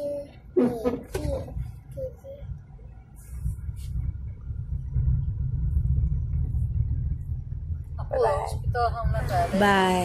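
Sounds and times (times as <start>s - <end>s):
car cabin rumble: 0.4s - 10.0s.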